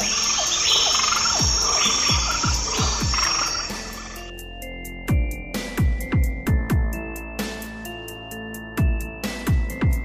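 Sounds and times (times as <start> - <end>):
chorus of frogs and insects: 0.0 - 4.3
electronic dance music: 0.0 - 4.3
steady high trill: 0.0 - 4.3.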